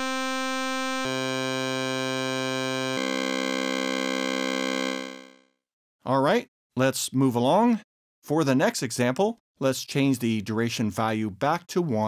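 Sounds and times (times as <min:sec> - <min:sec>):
buzzy synthesizer tone: 0:00.0 - 0:05.4.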